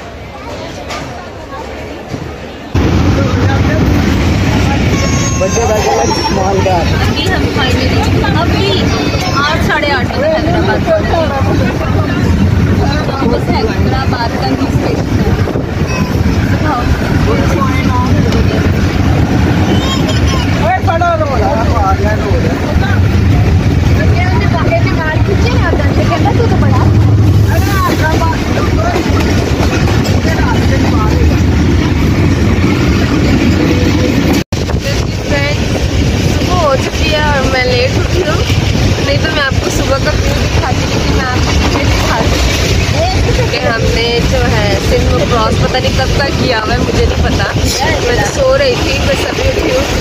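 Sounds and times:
passengers' voices: 0:00.0 - 0:50.0
train rumbling: 0:00.0 - 0:50.0.

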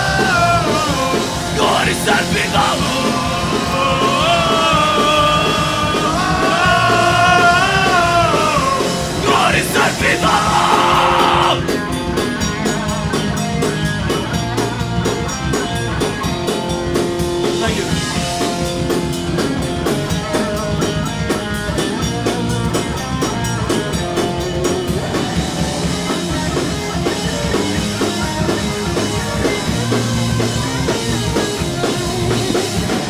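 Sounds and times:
fast steady drum beat: 0:00.0 - 0:33.0
punk band playing loud: 0:00.0 - 0:33.0.

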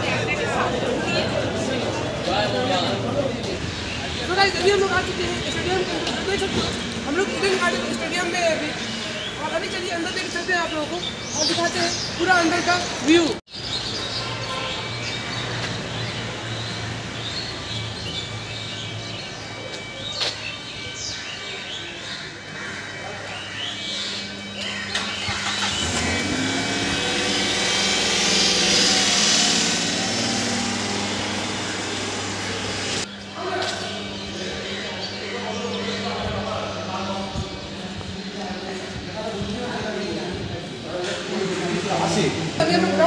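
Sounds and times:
low hum: 0:24.2 - 0:34.5.

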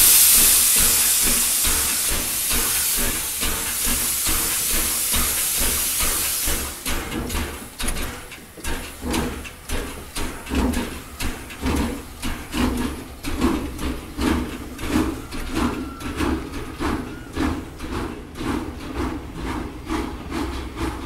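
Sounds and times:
steam locomotive chuffing: 0:00.0 - 0:21.0
steam locomotive hissing steam: 0:00.0 - 0:21.0.

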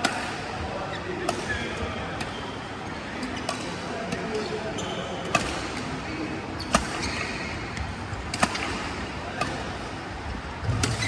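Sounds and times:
rackets hitting shuttlecock: 0:00.0 - 0:00.6, 0:01.2 - 0:04.6, 0:05.2 - 0:11.0
murmur of voices: 0:00.0 - 0:11.0.

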